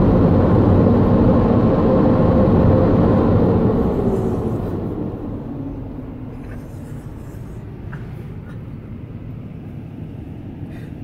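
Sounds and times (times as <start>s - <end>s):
car engine rumble from inside: 0.0s - 11.0s.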